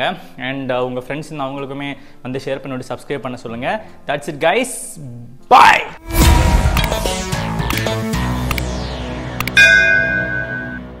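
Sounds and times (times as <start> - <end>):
background music: 0.0 - 11.0
bright bell chime: 9.6 - 10.9.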